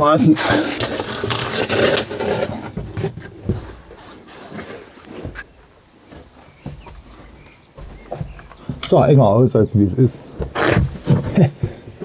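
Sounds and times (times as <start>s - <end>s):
clothing scraping against rock: 0.1s - 8.2s, 10.3s - 11.6s.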